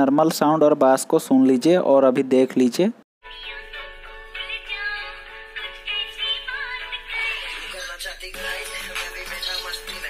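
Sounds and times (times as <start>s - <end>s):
song through small speaker: 3.2s - 10.0s.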